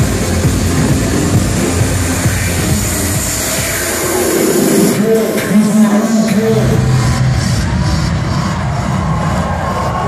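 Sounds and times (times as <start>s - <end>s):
electronic dance music with heavy bass: 0.0s - 10.0s.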